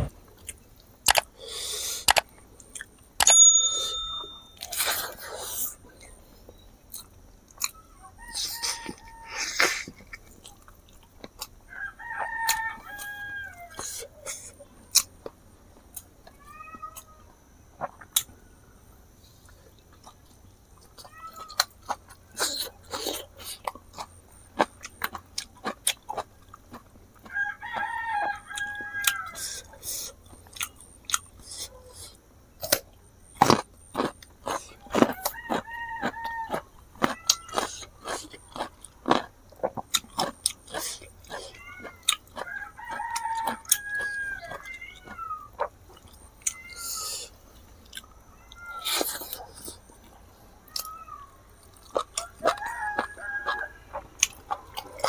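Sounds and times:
rooster crowing: 0:07.9 - 0:09.6, 0:11.7 - 0:14.0, 0:27.2 - 0:29.8, 0:34.8 - 0:37.7, 0:41.6 - 0:45.2, 0:50.7 - 0:54.1
chewing and lip-smacking: 0:09.6 - 0:11.6, 0:19.4 - 0:27.9, 0:28.5 - 0:50.9, 0:51.5 - 0:55.0.

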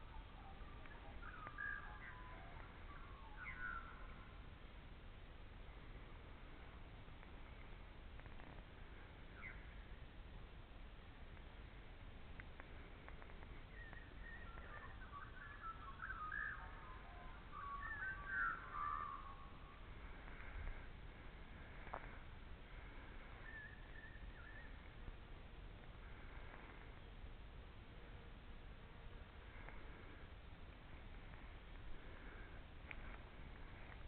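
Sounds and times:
faint whistled bird calls: 0:00.0 - 0:04.4, 0:05.7 - 0:10.0, 0:12.4 - 0:25.2, 0:29.1 - 0:34.0.

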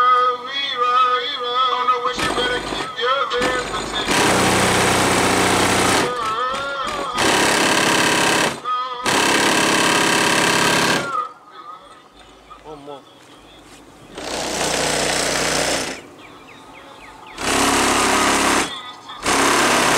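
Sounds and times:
rapped vocals: 0:00.0 - 0:19.9
heavy bass blasts buzzing: 0:02.2 - 0:06.2.

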